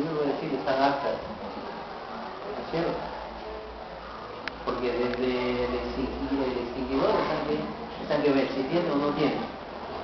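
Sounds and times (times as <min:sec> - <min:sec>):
room background noise: 0:00.0 - 0:10.0.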